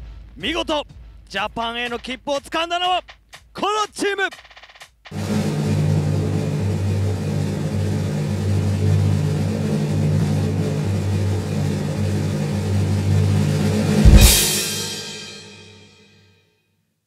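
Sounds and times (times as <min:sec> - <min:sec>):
low rumbling drum roll: 0:05.1 - 0:15.6.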